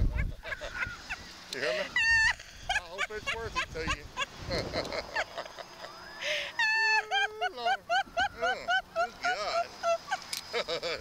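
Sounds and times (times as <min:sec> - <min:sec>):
wind rumbling on microphone: 0:00.0 - 0:01.3, 0:02.0 - 0:05.6
woman laughing: 0:00.0 - 0:11.0.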